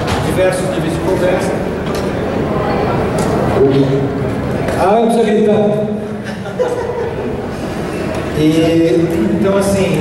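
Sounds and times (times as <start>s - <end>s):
crowded hall noise: 0.0s - 10.0s
man laughing into microphone: 6.2s - 7.5s.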